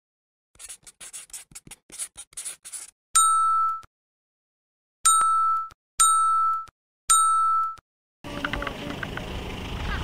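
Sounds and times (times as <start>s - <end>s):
pen scratching on paper: 0.6s - 2.9s
bright chime ding: 5.1s - 7.8s.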